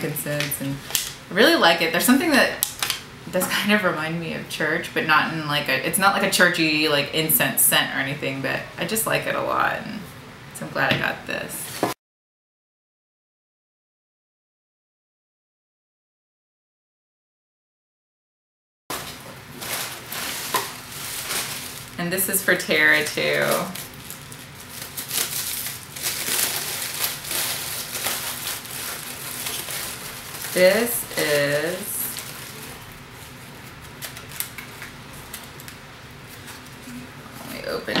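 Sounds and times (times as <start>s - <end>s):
paper wrapping crinkling: 18.9s - 37.0s.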